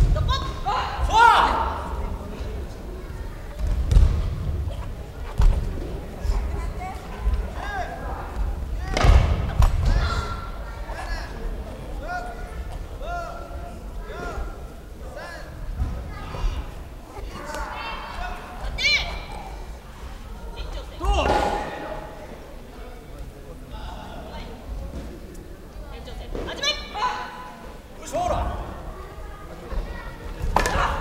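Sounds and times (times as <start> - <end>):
background chatter: 0.0 - 31.0.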